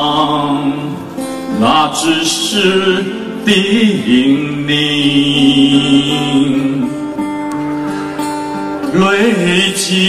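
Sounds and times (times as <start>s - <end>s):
man singing through microphone: 0.0s - 7.2s, 8.8s - 10.0s.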